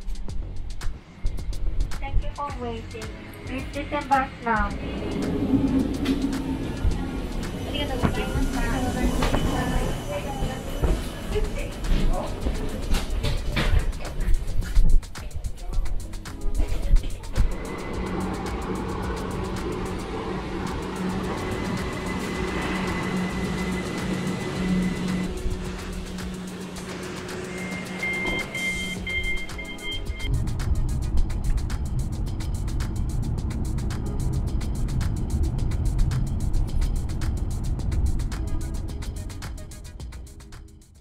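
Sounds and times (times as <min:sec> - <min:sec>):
electric train hum: 0:00.0 - 0:40.8
background music: 0:00.0 - 0:41.0
two-tone door button beeps: 0:28.0 - 0:30.3.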